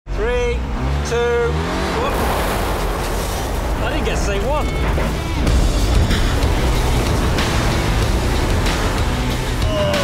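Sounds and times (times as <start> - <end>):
tyre and road noise: 0.1 - 10.0
engine running hard: 0.2 - 10.0.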